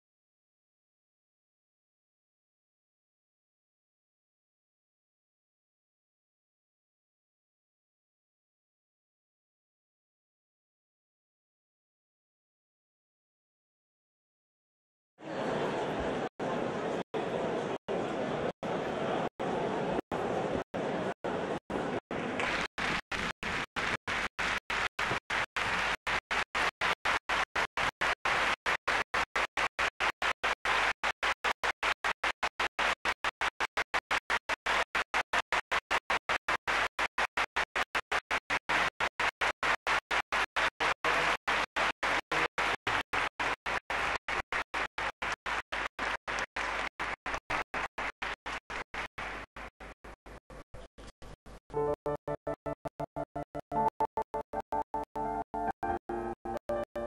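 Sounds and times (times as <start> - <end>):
audience applauding: 22.0 - 50.4.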